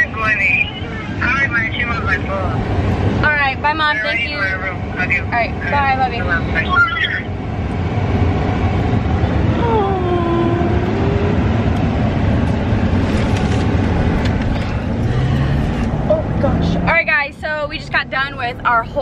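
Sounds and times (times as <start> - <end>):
road and engine rumble: 0.0 - 19.0.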